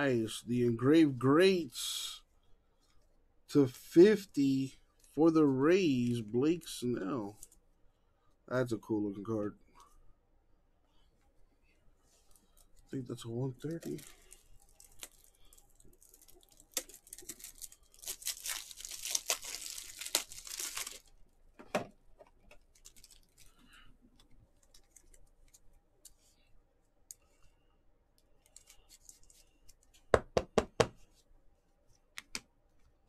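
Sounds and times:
plastic packaging crinkling: 12.3s - 21.2s, 22.3s - 25.7s.

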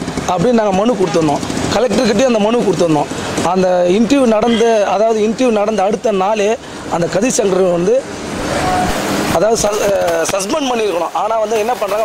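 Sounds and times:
vehicle passing on street: 0.0s - 12.0s
man speaking: 0.3s - 8.1s, 9.3s - 12.0s.

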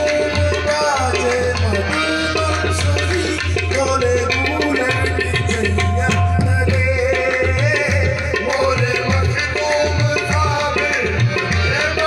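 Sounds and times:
tabla drumming: 0.0s - 12.0s.

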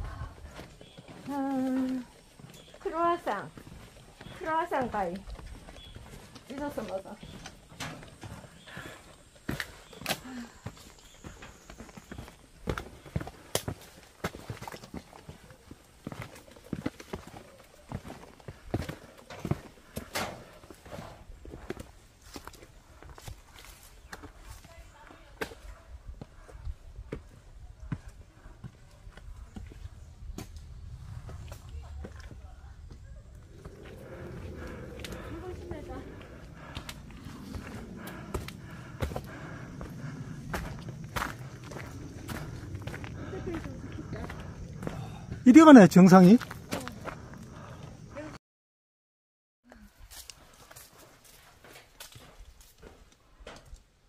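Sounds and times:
footsteps on metal stairs and rock: 0.0s - 25.6s, 33.5s - 47.9s, 50.1s - 53.8s
person speaking: 45.4s - 47.0s.

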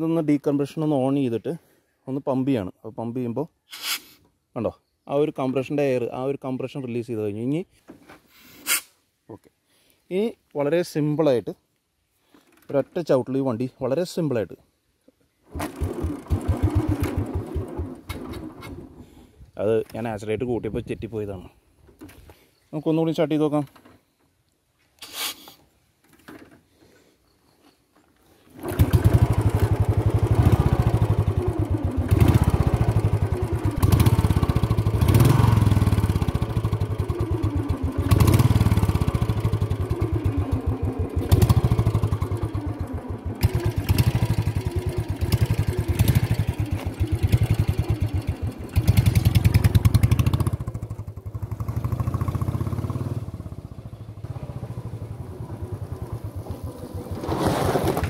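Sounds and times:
motorcycle engine running: 28.6s - 57.0s.

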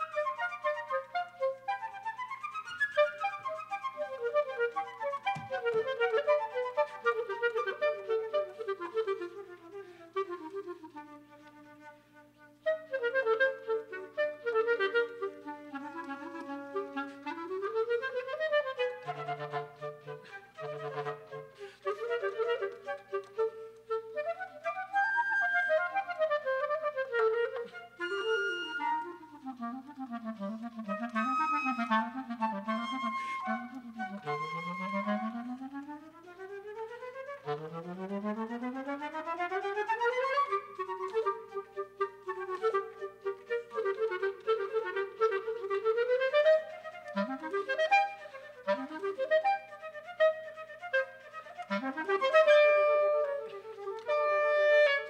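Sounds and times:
clarinet: 0.0s - 55.0s
flute: 0.0s - 55.0s.

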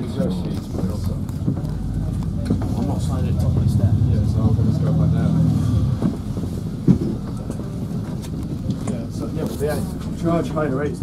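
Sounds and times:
vehicle rumble from inside cabin: 0.0s - 11.0s.

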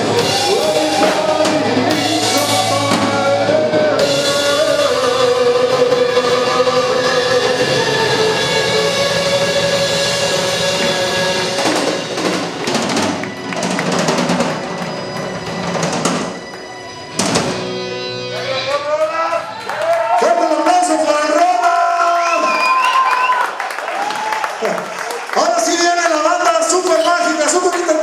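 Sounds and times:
live rock band: 0.0s - 25.4s.

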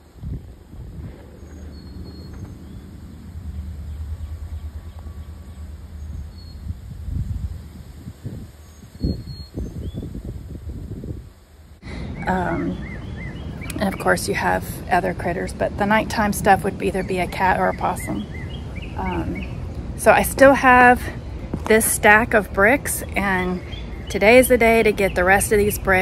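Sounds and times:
low uneven rumble: 0.0s - 26.0s.

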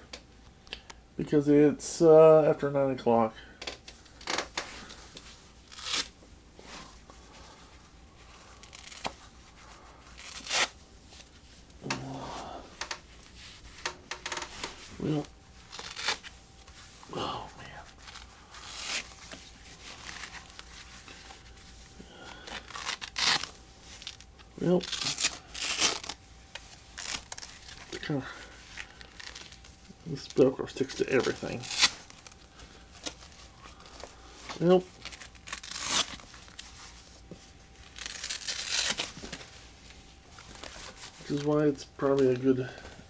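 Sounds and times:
hook-and-loop straps peeling open: 8.6s - 9.2s, 13.7s - 16.3s, 22.4s - 28.0s, 31.2s - 32.4s, 35.0s - 36.6s.

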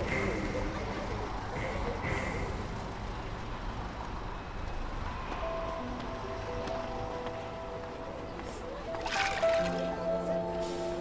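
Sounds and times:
bus engine idling: 0.0s - 8.9s.

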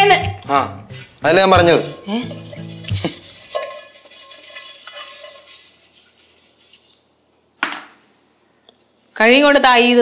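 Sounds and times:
background music: 0.0s - 3.3s
scraping inside enamel bowl: 0.0s - 7.1s.

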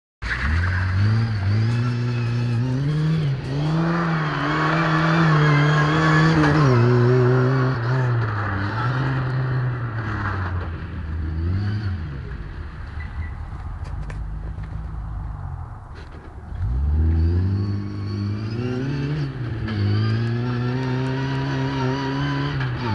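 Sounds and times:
car engine revving past: 0.4s - 22.9s.

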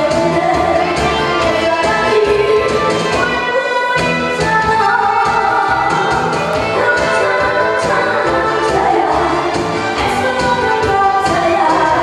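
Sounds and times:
music with steady beat: 0.0s - 12.0s
woman singing into microphone: 0.0s - 12.0s.

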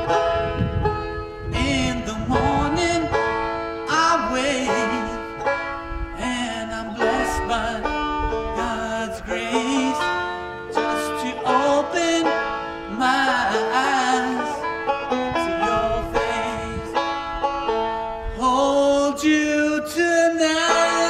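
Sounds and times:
banjo picking: 0.0s - 21.0s.

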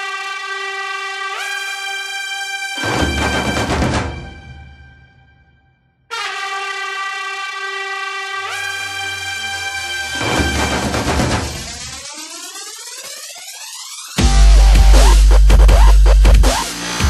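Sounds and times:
brassy horn chord: 0.0s - 4.7s, 6.1s - 11.5s
rising sweep: 8.4s - 16.2s.

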